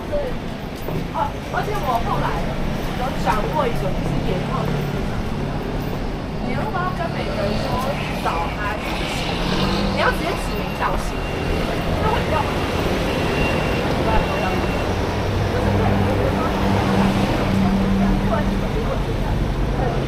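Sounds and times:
car and scooter engines: 0:00.0 - 0:20.0
passers-by talking: 0:00.0 - 0:20.0.

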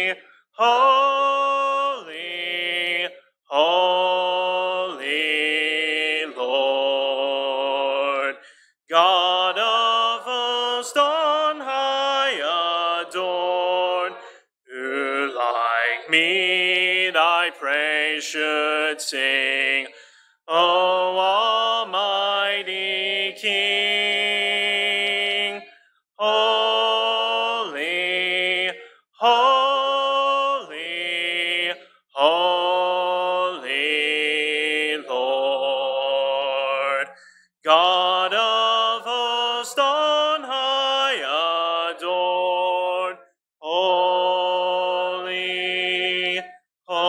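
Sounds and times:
man singing a hymn: 0:00.0 - 0:08.3, 0:08.9 - 0:19.9, 0:26.2 - 0:37.0, 0:37.7 - 0:47.0.

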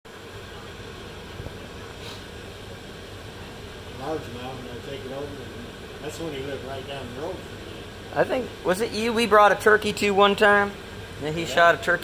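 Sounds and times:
low hum and hiss: 0:00.1 - 0:12.0.

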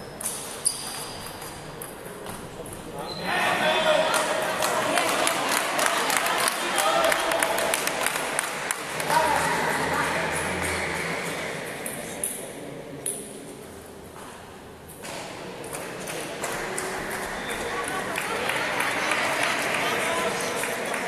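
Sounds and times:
voices in sports hall: 0:00.0 - 0:21.0.

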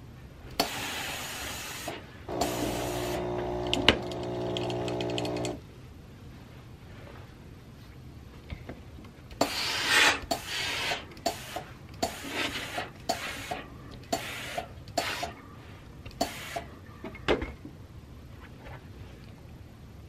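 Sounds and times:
iron strokes over cloth: 0:00.6 - 0:05.6, 0:09.4 - 0:15.4.

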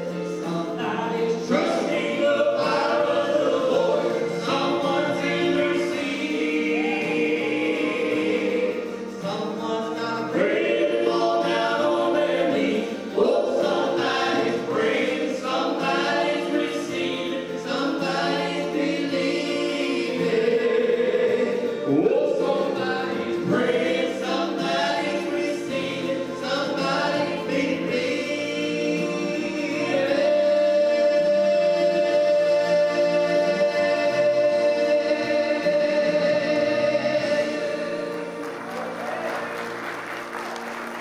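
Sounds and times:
gospel trio singing in harmony: 0:00.0 - 0:41.0.

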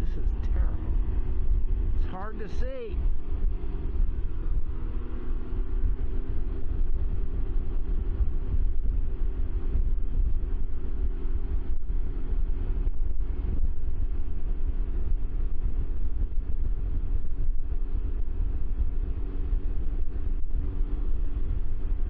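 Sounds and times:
engine drone: 0:00.0 - 0:22.0
wind rushing over microphone: 0:00.0 - 0:22.0.

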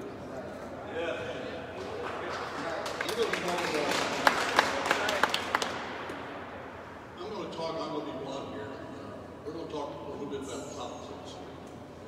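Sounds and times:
small audience applauding: 0:01.8 - 0:06.0.

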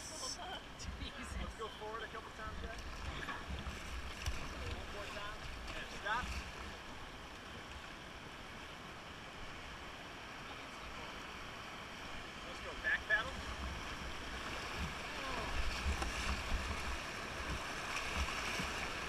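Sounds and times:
river water rushing over rapid: 0:00.0 - 0:19.0.

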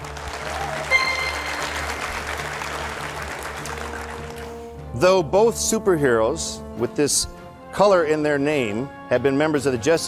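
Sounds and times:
audience applauding: 0:00.0 - 0:04.6
background music: 0:00.0 - 0:10.0
short high electronic tone: 0:00.9 - 0:02.3.

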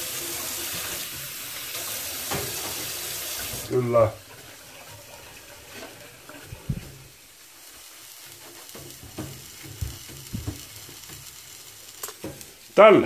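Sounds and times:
low hiss: 0:00.0 - 0:13.0.

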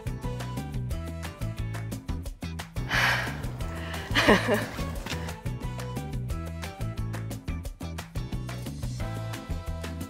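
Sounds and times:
person gasping: 0:02.8 - 0:05.4.

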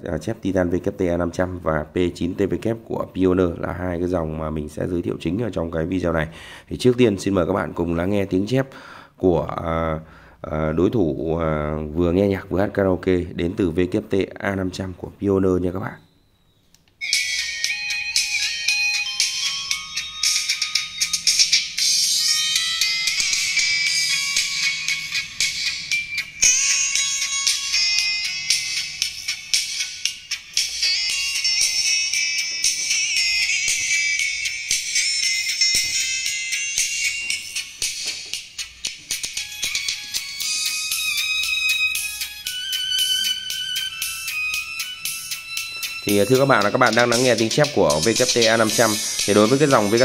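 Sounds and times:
bright trebly music from tweeter: 0:16.0 - 0:50.0.

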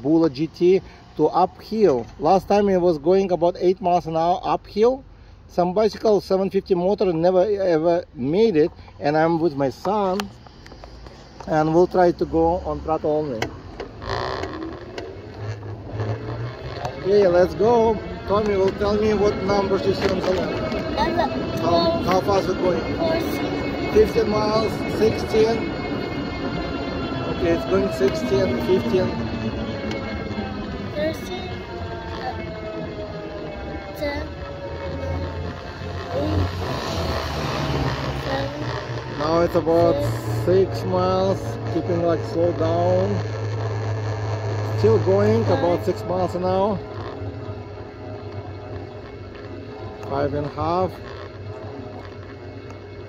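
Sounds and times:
electric bike rolling on pavement: 0:00.0 - 0:53.0
wind: 0:00.0 - 0:53.0
electric hub motor whining: 0:05.8 - 0:53.0.

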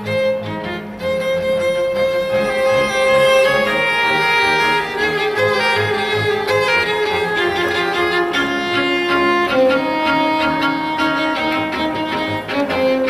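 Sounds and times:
bowed double bass notes: 0:00.0 - 0:13.0
violin melody: 0:00.0 - 0:13.0.

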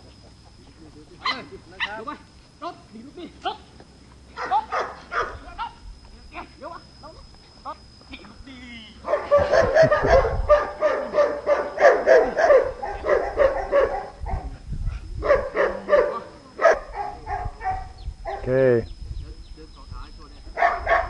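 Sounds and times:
small dog barking: 0:04.4 - 0:05.8, 0:09.0 - 0:14.6, 0:15.2 - 0:18.5, 0:20.6 - 0:21.0.

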